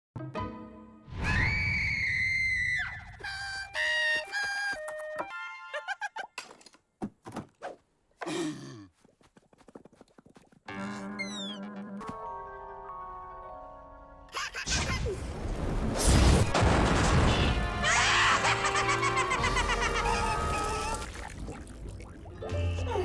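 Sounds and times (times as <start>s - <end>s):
comic cartoon music: 10.7s - 13.0s, 17.0s - 21.2s, 22.2s - 23.0s.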